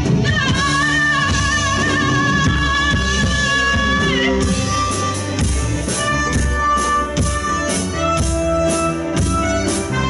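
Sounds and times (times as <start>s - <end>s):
drum strokes steady beat: 0.0s - 10.0s
live band playing: 0.0s - 10.0s.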